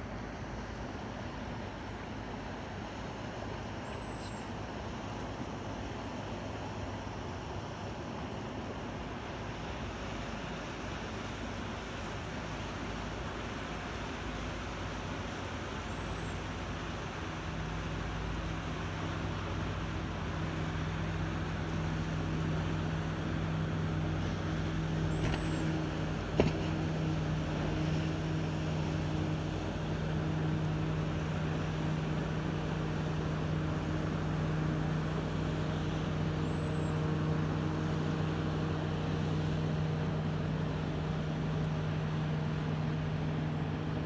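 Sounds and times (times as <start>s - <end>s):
motorboat engine droning: 0.0s - 44.0s.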